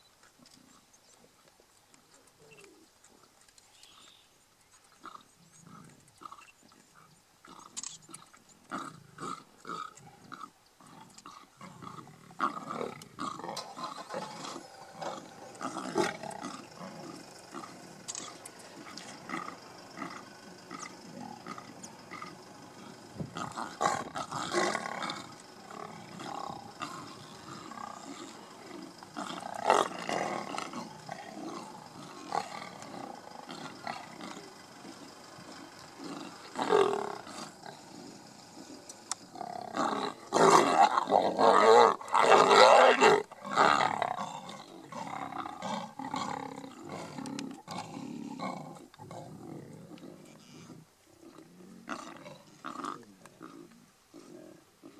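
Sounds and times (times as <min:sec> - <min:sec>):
lions growling: 0:05.0 - 0:54.9.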